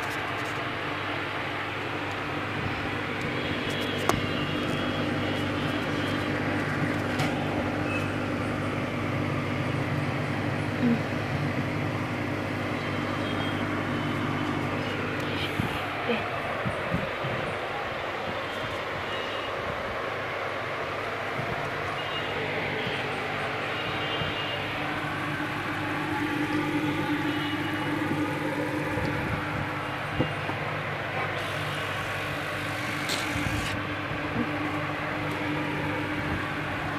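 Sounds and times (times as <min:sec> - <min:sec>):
aquarium equipment humming: 0:00.0 - 0:17.8, 0:20.2 - 0:36.9.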